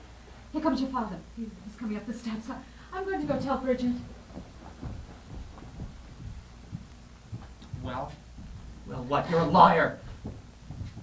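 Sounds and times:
footsteps on stage floor: 3.1s - 11.0s.

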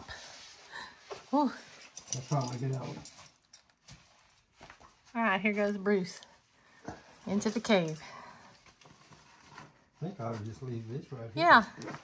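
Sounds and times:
footstep scuffs and rustles: 0.1s - 7.9s, 8.6s - 11.3s.

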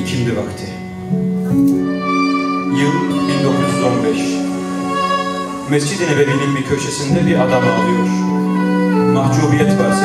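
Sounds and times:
keyboard: 0.0s - 10.0s
violin: 0.0s - 10.0s.

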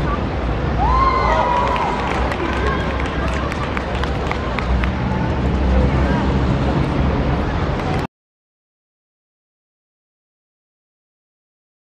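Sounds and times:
background traffic rumble: 0.0s - 8.1s.

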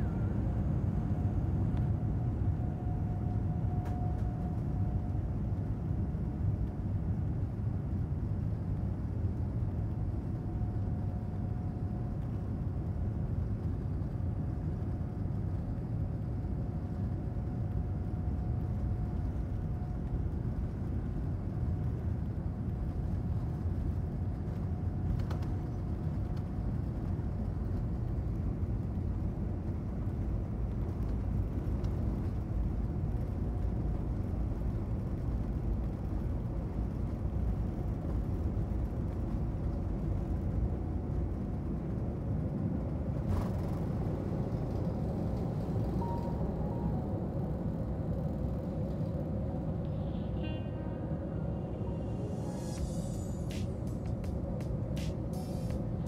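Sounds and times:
jet engine rumble: 0.0s - 56.0s
faint high tone: 49.5s - 53.5s.

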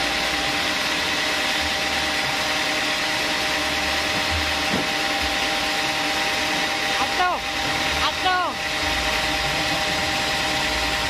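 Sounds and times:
sawmill running: 0.0s - 11.0s.

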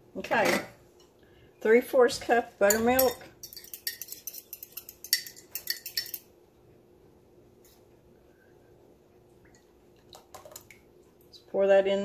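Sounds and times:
metal spoon clinking ceramic cup: 2.6s - 6.2s.

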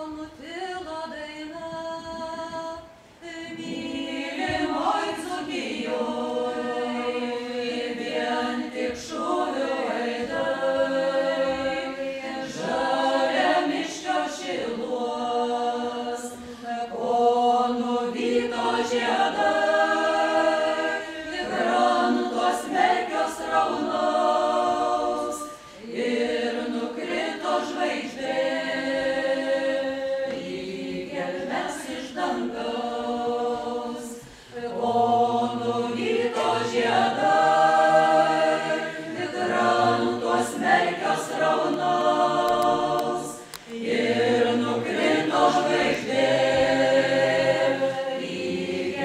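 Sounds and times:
group singing a cappella: 0.0s - 49.0s.

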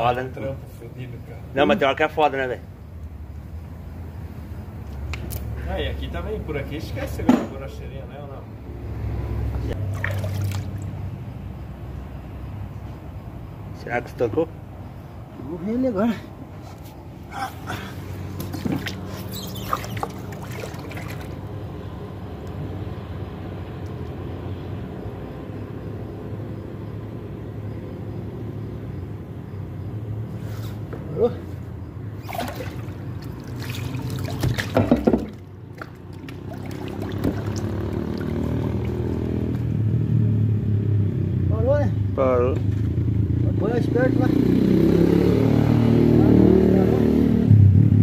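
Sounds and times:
water splashing and sloshing: 9.2s - 11.3s, 17.5s - 21.9s, 32.1s - 39.7s.

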